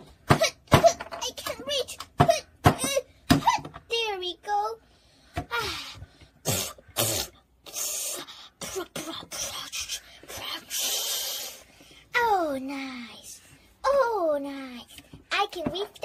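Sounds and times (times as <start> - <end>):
short breathy bursts: 4.8 - 8.6, 9.3 - 12.1
person making straining noises: 5.5 - 11.7.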